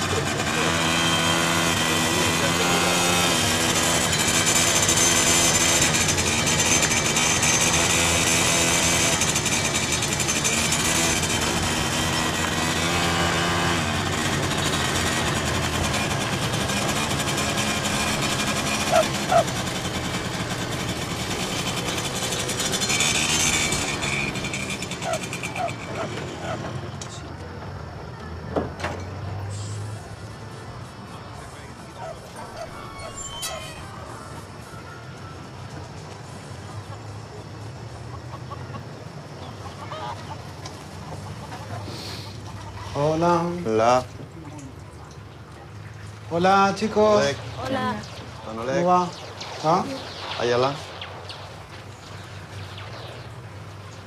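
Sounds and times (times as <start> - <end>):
small motorcycle engine running: 0.0 - 27.4.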